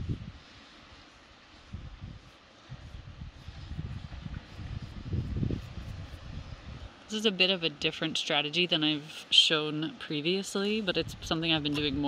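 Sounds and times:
wind buffeting microphone: 0.0s - 7.0s, 10.8s - 12.0s.

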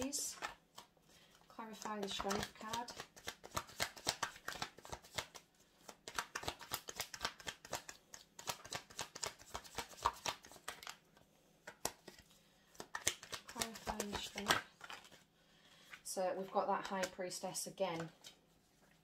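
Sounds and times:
cards being shuffled by hand: 0.0s - 19.0s.

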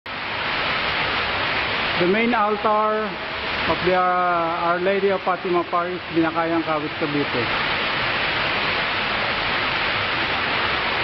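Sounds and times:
small waterfall splashing: 0.1s - 11.0s.

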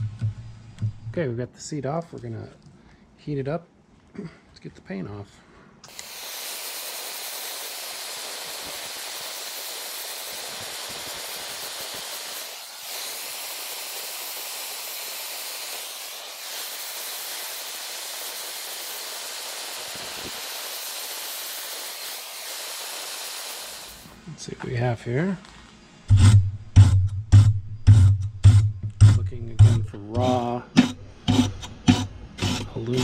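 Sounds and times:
gas torch flame hissing: 5.8s - 24.2s.

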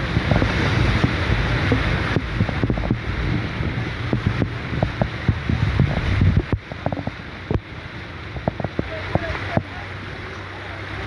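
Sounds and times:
vehicle driving through floodwater: 0.0s - 11.0s
water rushing along vehicle: 0.0s - 11.0s
wind buffeting microphone: 0.0s - 11.0s.

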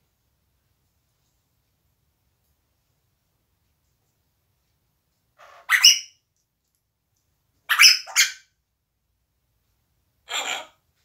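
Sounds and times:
parrot harsh calls: 5.4s - 6.2s, 7.7s - 8.5s, 10.2s - 10.8s.

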